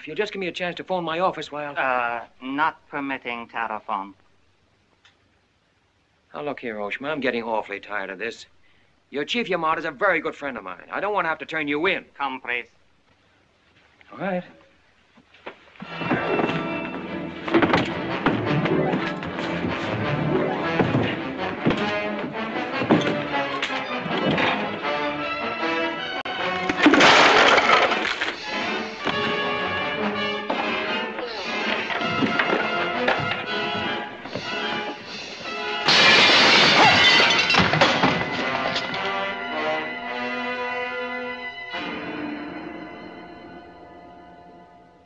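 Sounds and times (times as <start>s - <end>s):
furniture breaking: 15.8s - 24.8s, 26.5s - 29.5s, 31.7s - 35.0s, 35.8s - 39.1s
dramatic orchestral music: 15.9s - 26.9s, 28.4s - 35.9s, 38.2s - 44.8s
loud crashes: 26.6s - 29.4s, 35.8s - 39.0s.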